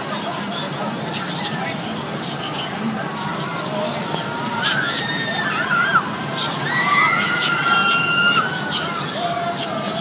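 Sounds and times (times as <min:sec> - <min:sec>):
riders screaming: 0:04.6 - 0:10.0.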